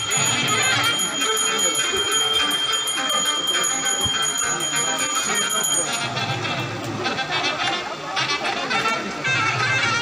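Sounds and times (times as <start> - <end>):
bell ringing rapidly: 0.0 - 6.4
music: 0.0 - 6.6, 7.2 - 10.0.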